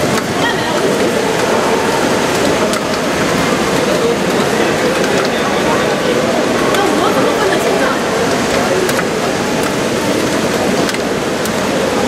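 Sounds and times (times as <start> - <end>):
heavy rain on street: 0.0 - 12.0.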